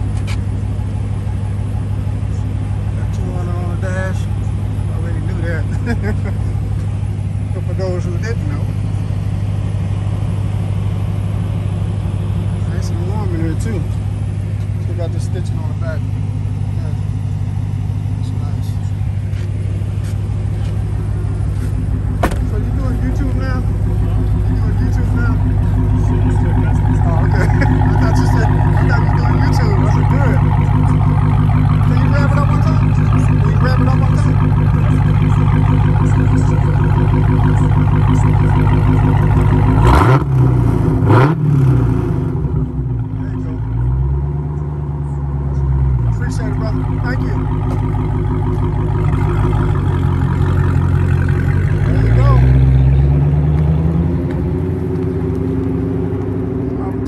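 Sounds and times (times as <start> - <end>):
car engine idling: 0.0 - 57.0.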